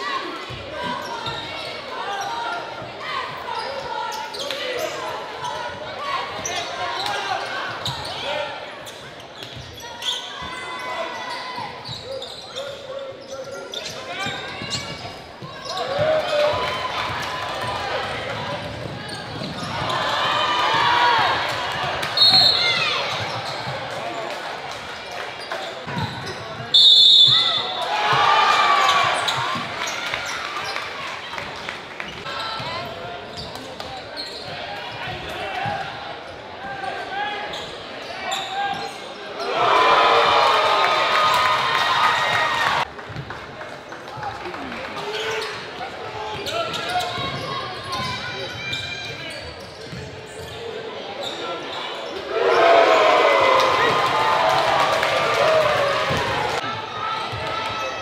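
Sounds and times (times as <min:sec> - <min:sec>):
crowd voices and shouting: 0:00.0 - 0:58.0
shrill whistle blasts: 0:22.2 - 0:22.8, 0:26.7 - 0:27.8.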